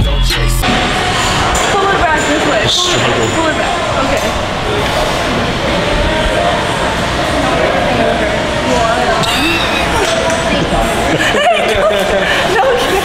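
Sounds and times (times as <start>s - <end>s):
gym din: 0.0s - 7.4s
indistinct voices: 0.0s - 13.0s.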